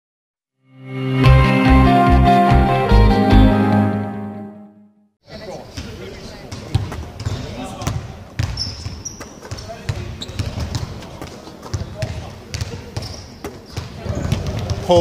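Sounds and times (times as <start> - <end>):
basketballs bouncing on hardwood: 6.5 - 15.0.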